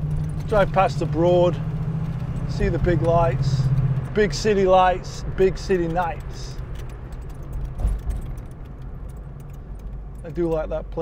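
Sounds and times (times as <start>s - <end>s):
car engine running: 0.0s - 11.0s
light clicking rattles: 0.0s - 11.0s.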